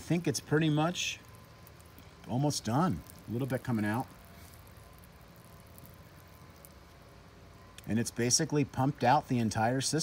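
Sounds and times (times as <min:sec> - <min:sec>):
water trickling onto soil: 0:00.0 - 0:09.3.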